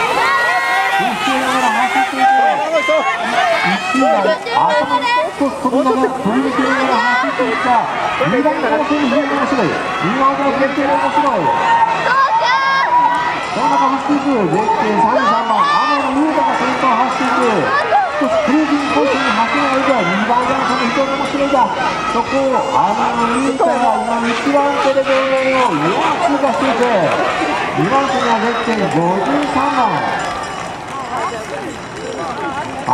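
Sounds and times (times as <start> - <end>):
announcer commentary over loudspeakers: 0.0 - 32.9
outdoor crowd noise: 0.0 - 32.9
spectators shouting and cheering: 0.0 - 32.9.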